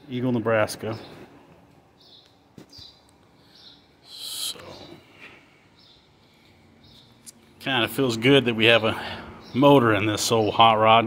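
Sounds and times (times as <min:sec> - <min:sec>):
faint bird chirps: 0:02.0 - 0:07.6
hissy bird chirp: 0:02.0 - 0:10.6.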